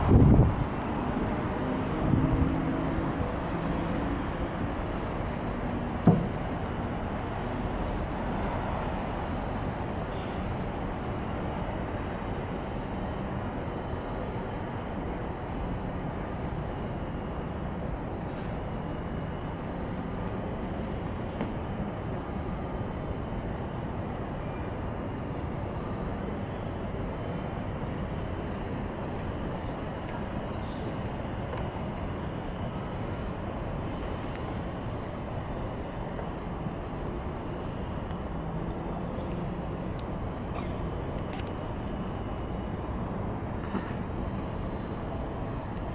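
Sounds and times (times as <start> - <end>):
low rumble of city background: 0.0 - 45.9.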